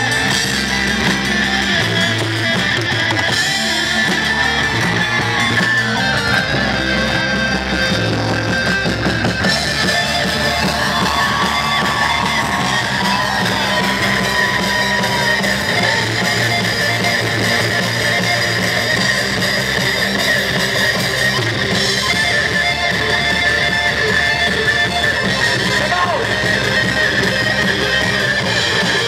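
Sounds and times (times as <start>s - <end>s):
electric guitar: 0.0s - 29.0s
rock band playing live: 0.0s - 29.0s.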